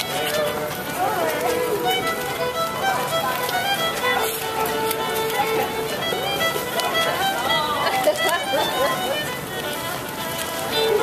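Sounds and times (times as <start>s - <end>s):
fiddle playing dance tune: 0.0s - 11.0s.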